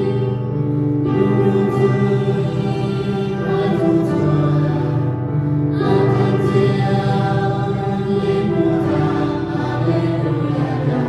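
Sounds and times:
piano accompaniment: 0.0 - 11.0
vocal quartet singing a hymn: 0.0 - 11.0.

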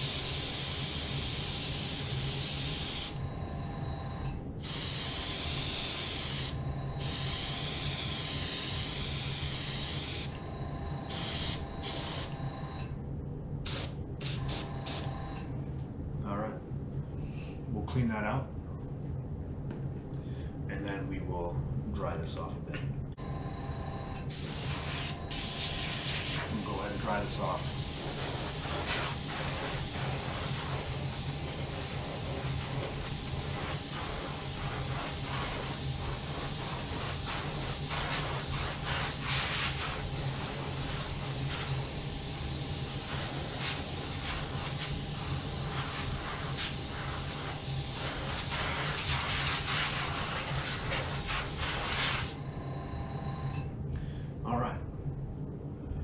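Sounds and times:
airbrush hissing air: 0.0 - 3.2, 4.6 - 10.4, 11.1 - 12.4, 13.6 - 15.2, 24.3 - 52.4
low hum: 0.1 - 56.0.

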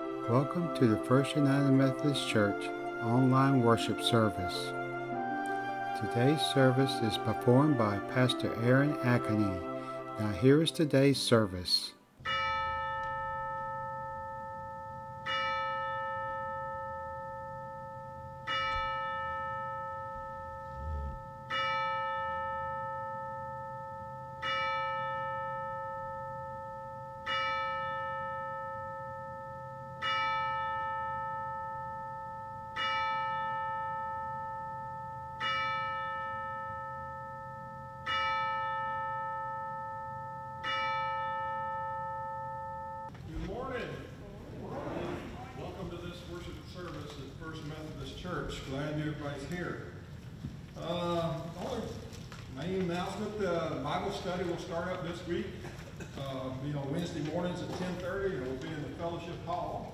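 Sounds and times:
church bell tolling: 0.0 - 4.7, 5.9 - 11.5, 12.2 - 43.6.

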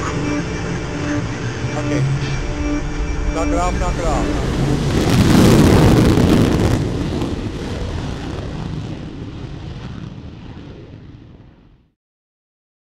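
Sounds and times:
jet aircraft noise: 0.0 - 11.6.

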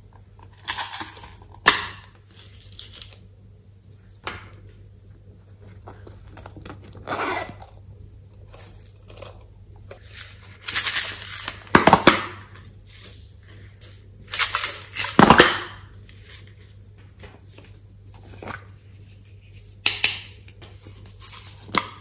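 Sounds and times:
plastic containers rustling and scraping: 5.5 - 7.8, 8.4 - 15.5, 16.1 - 19.8, 20.6 - 22.0.

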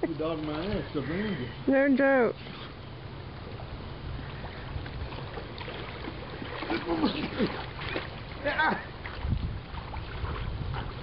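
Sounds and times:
pool water splashing: 0.0 - 11.0
wind rumbling on microphone: 3.0 - 11.0.

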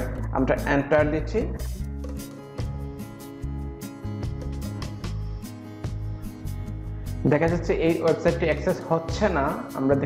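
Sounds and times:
instrumental music with bass line: 0.0 - 10.0.

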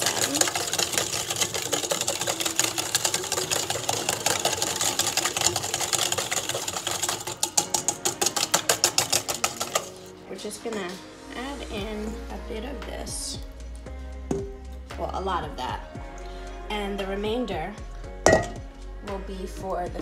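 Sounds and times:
whisk clicking on metal bowl: 0.0 - 10.1.

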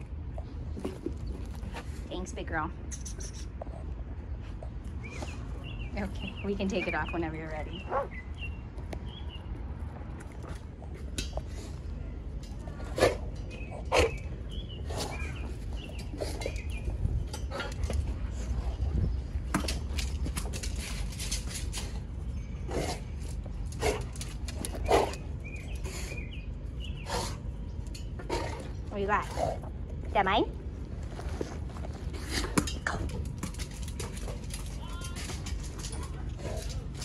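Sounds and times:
small birds chirping: 1.2 - 9.6, 13.4 - 17.7, 24.6 - 29.4.

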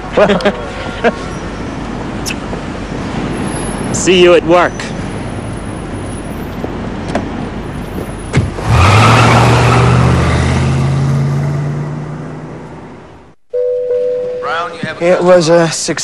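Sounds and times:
street traffic noise: 0.0 - 16.0.

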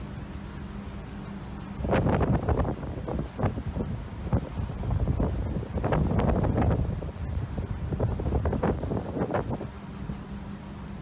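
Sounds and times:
low rumble of ship and sea: 0.0 - 11.0
wind buffeting microphone: 1.7 - 10.3.

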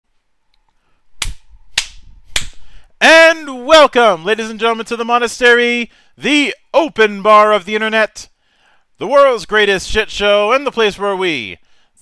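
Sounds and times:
sharp snaps: 0.6 - 2.7.

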